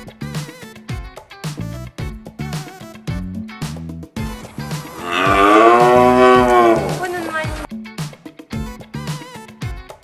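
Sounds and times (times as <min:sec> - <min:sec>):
background music: 0:00.0 - 0:10.0
farm animal call: 0:04.6 - 0:07.7.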